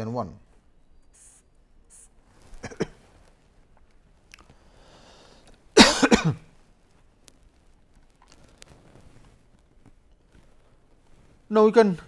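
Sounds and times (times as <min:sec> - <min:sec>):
man coughing: 0:02.6 - 0:03.0, 0:05.8 - 0:06.4.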